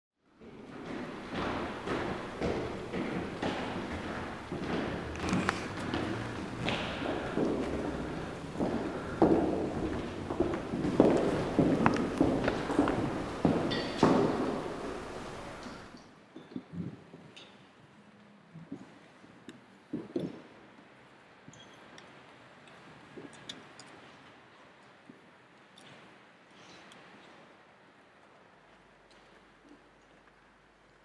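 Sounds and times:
thumps and knocks on wooden floor: 0:00.4 - 0:15.9
footsteps on wooden floorboards: 0:00.4 - 0:16.0.

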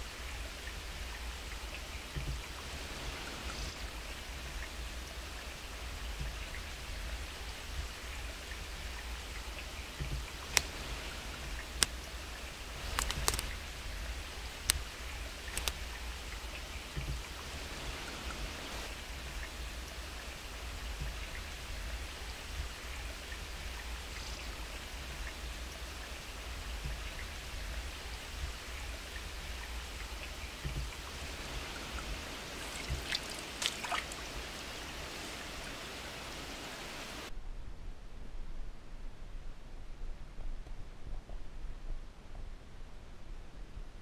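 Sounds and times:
stream rushing: 0:00.0 - 0:37.3
sharp clicks: 0:12.8 - 0:13.6, 0:15.5 - 0:15.8.

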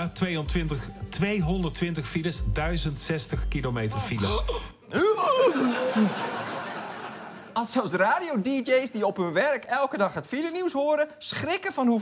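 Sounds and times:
audience laughing: 0:05.5 - 0:07.6.

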